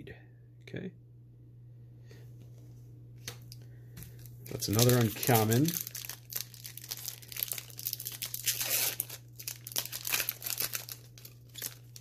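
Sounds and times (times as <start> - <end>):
steady low hum: 0.0 - 12.0
plastic wrappers crinkling: 4.1 - 12.0.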